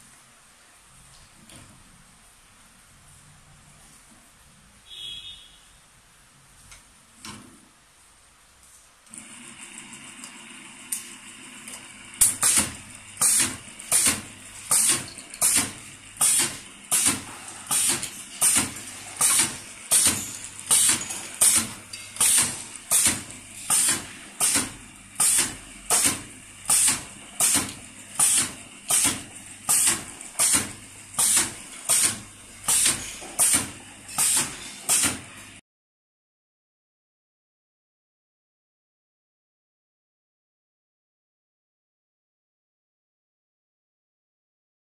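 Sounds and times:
machine motor hum: 9.1s - 35.1s
sharp pneumatic hiss: 12.2s - 35.4s.

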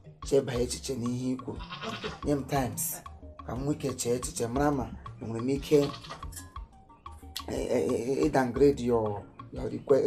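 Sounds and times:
person speaking: 0.3s - 6.5s, 7.4s - 10.0s.

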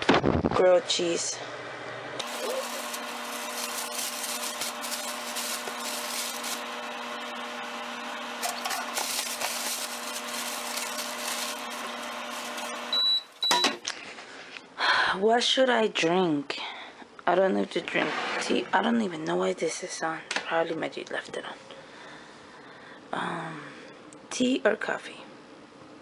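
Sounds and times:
microwave oven humming: 0.6s - 13.9s
plastic bag crinkling: 2.2s - 13.4s
short high beeps: 12.9s - 13.8s.

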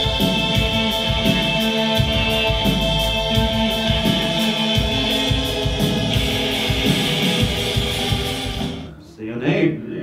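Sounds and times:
rock band music: 0.0s - 9.0s.

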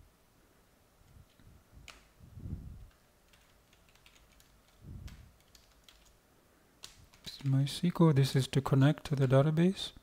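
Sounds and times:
computer keyboard key clicks: 2.9s - 6.2s.

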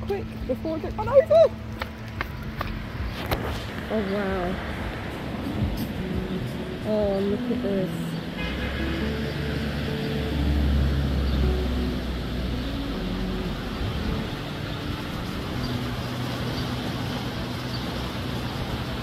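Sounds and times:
steady rushing background noise: 0.0s - 19.0s
vehicle engine rumble passing: 0.0s - 19.0s.

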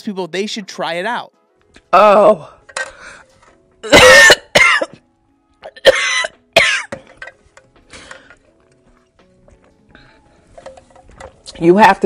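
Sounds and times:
woman coughing: 3.8s - 5.0s, 5.7s - 7.0s.

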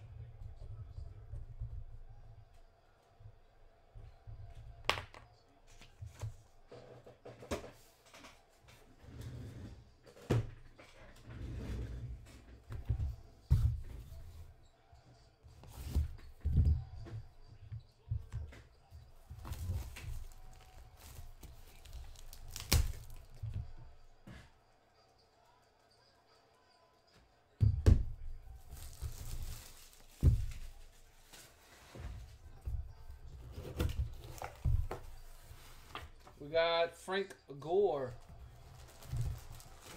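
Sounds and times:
cardboard and plastic rustling: 19.2s - 23.8s, 28.5s - 32.5s, 33.4s - 36.2s, 38.2s - 39.9s.

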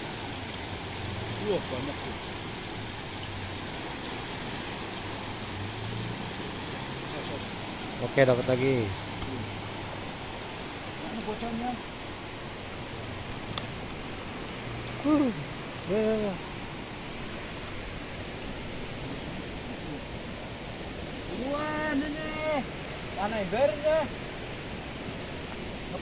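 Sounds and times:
river water rushing: 0.0s - 26.0s.

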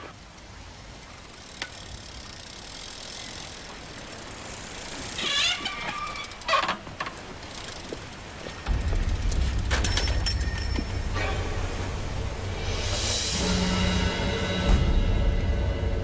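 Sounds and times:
bicycle riding on a road: 0.0s - 12.2s.

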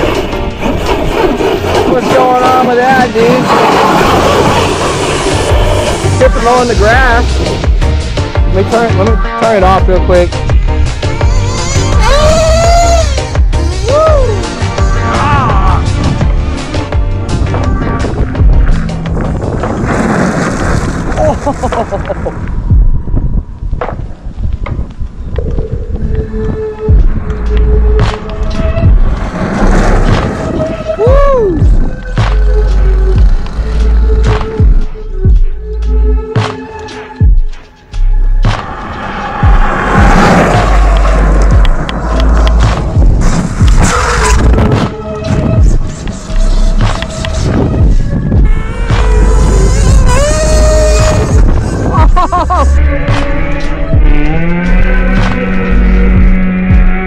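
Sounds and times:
tyres spraying gravel: 0.0s - 7.5s, 19.2s - 22.4s
background music: 0.0s - 57.0s
electric motor whining: 38.7s - 57.0s
rc car motor revving: 45.7s - 48.0s, 48.8s - 52.7s.

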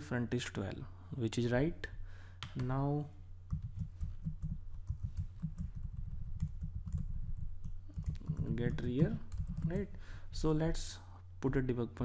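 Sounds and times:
steady low hum: 0.0s - 12.0s
keyboard typing: 3.5s - 10.0s.

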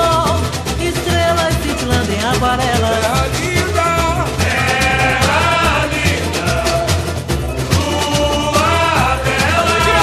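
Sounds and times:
deep bass drum beats: 0.0s - 10.0s
samba percussion band playing: 0.0s - 10.0s
singing: 7.7s - 10.0s.

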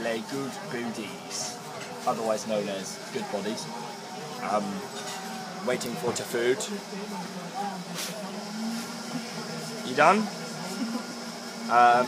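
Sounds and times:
restaurant background voices: 0.0s - 12.0s.

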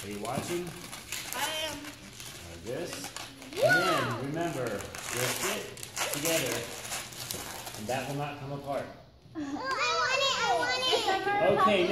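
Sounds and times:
voices in a small room: 0.0s - 11.9s
balloon rubbing and squeaking: 3.0s - 7.9s.

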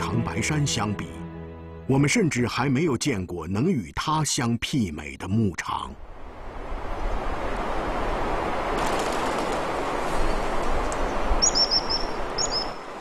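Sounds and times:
small bird chirping: 11.4s - 12.9s.

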